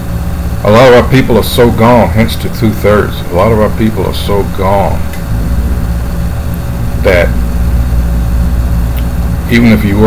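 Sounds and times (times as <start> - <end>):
low mechanical rumble: 0.0 - 10.0.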